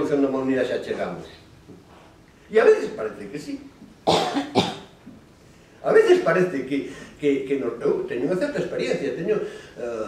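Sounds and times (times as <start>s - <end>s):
man speaking: 2.5s - 3.8s, 5.8s - 10.0s
man coughing: 4.1s - 4.9s.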